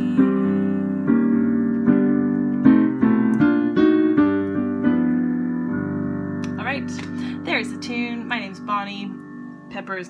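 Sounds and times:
solo piano chords: 0.0s - 10.0s.

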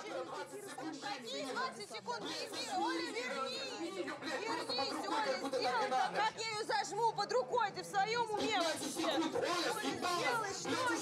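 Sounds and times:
several voices talking: 0.0s - 11.0s.

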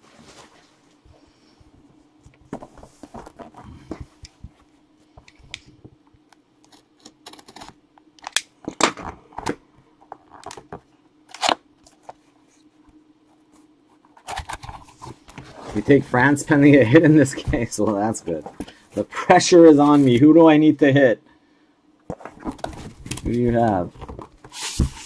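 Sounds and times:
cardboard scraping and rustling: 2.5s - 4.2s, 14.0s - 18.6s, 22.1s - 25.0s.

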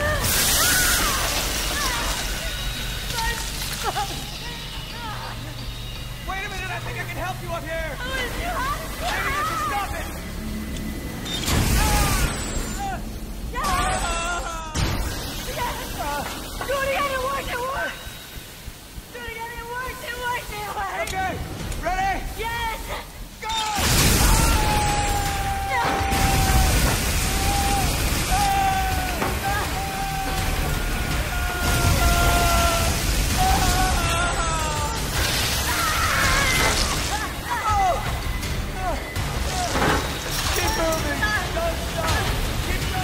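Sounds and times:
steam jets hissing: 0.0s - 7.4s, 14.8s - 43.0s
person screaming: 13.6s - 14.9s, 24.2s - 37.9s.

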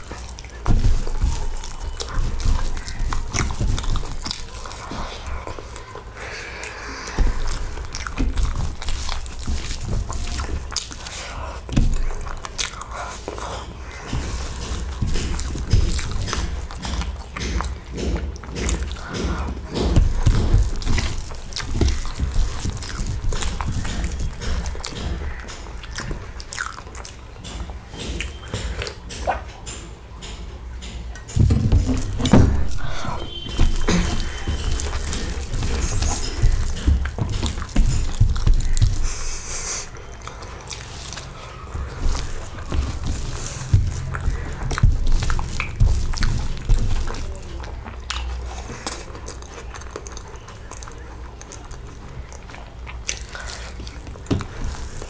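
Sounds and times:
fingers working food on leaf: 0.0s - 29.6s, 31.2s - 55.0s
chewing and mouth smacks: 0.0s - 29.7s, 31.1s - 55.0s.

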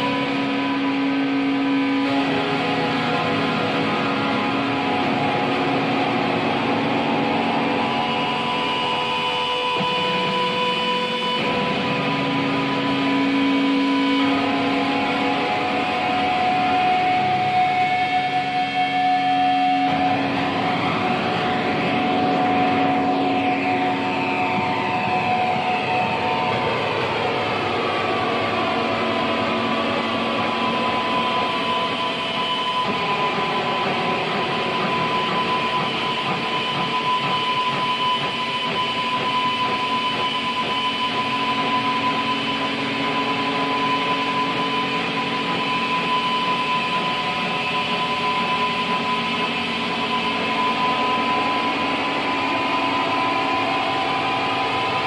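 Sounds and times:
harsh noise drone music: 0.0s - 55.0s.

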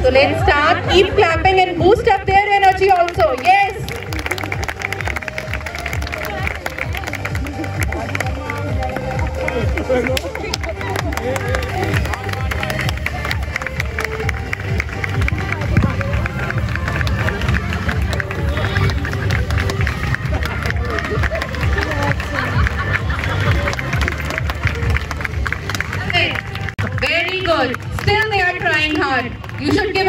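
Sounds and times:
babble of crowd: 0.0s - 27.1s
background music: 0.0s - 30.0s.

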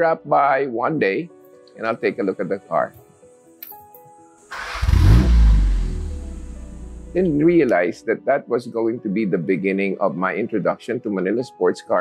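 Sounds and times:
car engine starting and revving: 4.5s - 7.4s.

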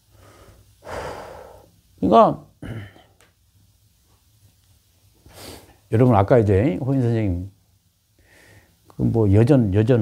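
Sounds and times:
man breathing: 0.0s - 1.8s, 8.2s - 8.8s.

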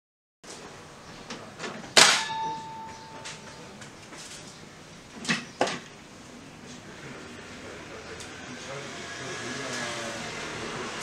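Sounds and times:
circuit breaker metallic clack: 2.0s - 3.9s.

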